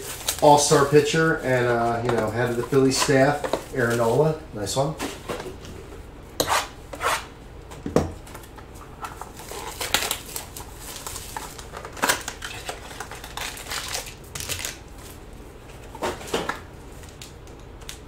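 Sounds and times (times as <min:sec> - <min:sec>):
cardboard and foil crinkling: 0:00.0 - 0:04.4, 0:09.2 - 0:15.9.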